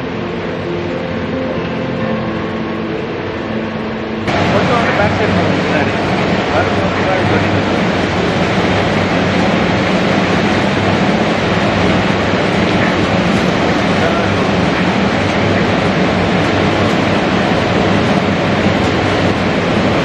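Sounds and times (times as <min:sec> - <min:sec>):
low electric hum: 0:00.0 - 0:20.0.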